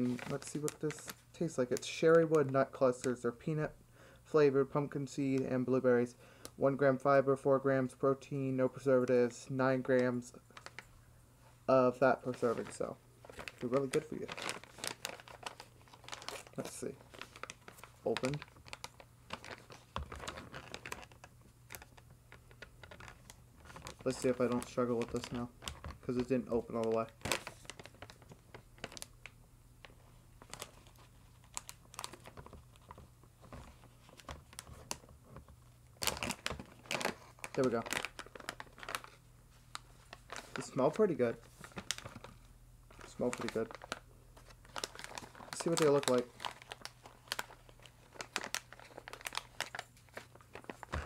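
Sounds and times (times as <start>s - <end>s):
snack bag crinkling: 12.3s - 29.3s, 30.4s - 51.0s.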